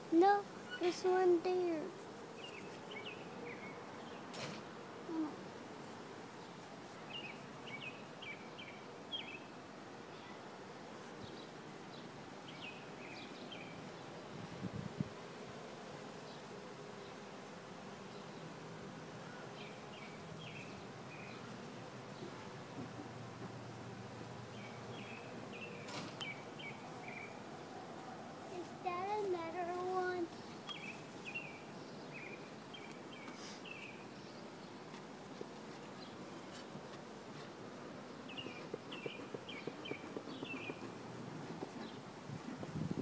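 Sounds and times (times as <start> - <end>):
honeybees buzzing: 0.0 - 43.0.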